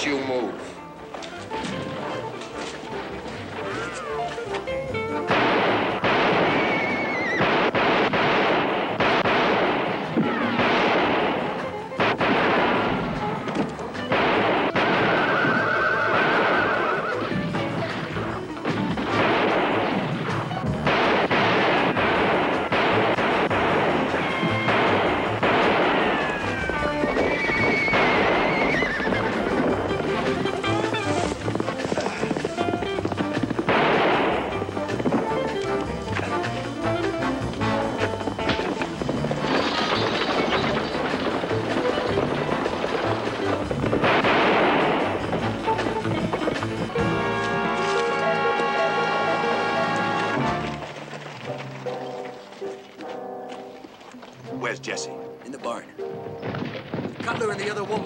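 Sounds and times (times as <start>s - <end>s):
film score music: 0.0s - 58.0s
horses neighing: 2.7s - 4.7s, 6.0s - 7.8s, 14.8s - 19.3s, 23.5s - 52.5s.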